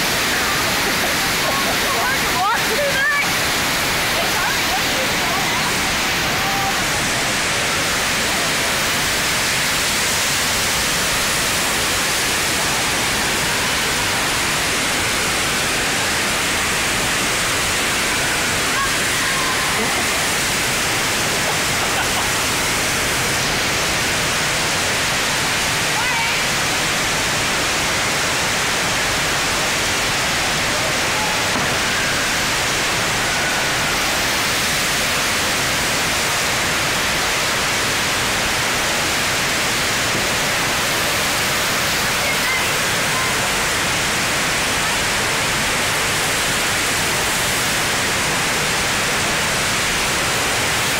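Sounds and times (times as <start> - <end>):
rushing water: 0.0 - 50.9.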